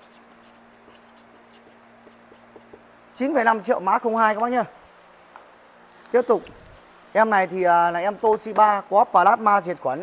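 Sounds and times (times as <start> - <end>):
marker pen scratching paper: 0.0 - 2.8
steady low hum: 0.0 - 9.1.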